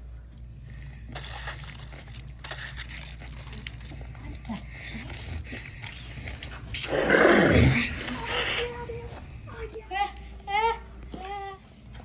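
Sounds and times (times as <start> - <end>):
monster-like roar: 6.8 - 8.6.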